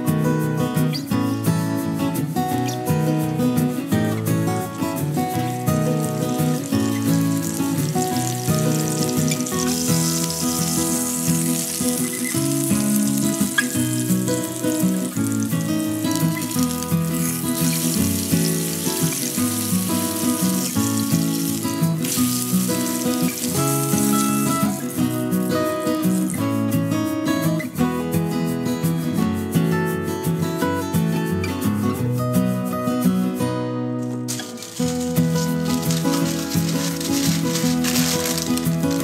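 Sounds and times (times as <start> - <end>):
background music: 0.0 - 39.0
meat sizzling in a skillet: 4.0 - 26.8, 34.3 - 39.0.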